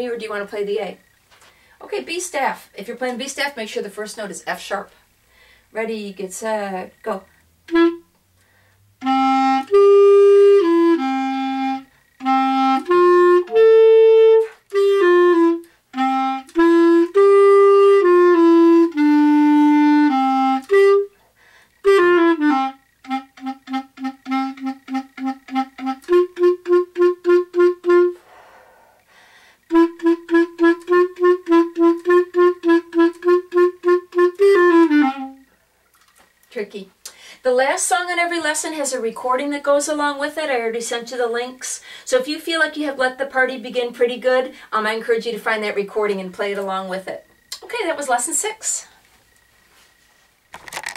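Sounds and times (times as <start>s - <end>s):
solo clarinet playing: 7.6s - 8.2s, 9.0s - 28.4s, 29.7s - 35.6s.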